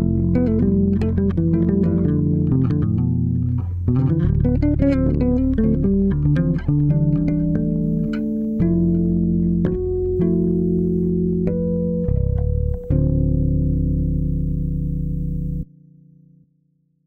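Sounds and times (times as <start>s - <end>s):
electric bass guitar: 0.0s - 16.4s.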